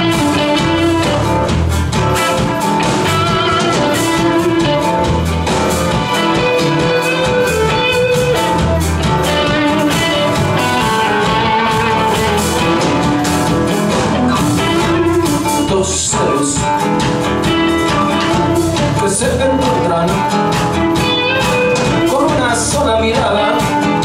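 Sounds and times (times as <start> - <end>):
acoustic guitar: 0.0 - 24.0
bass guitar: 0.0 - 24.0
drum kit: 0.0 - 24.0
electric guitar: 0.0 - 24.0.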